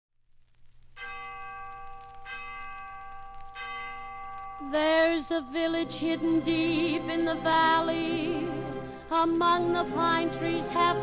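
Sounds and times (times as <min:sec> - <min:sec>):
record hum and crackle: 0:00.2 - 0:11.0
bell ringing: 0:01.0 - 0:09.0.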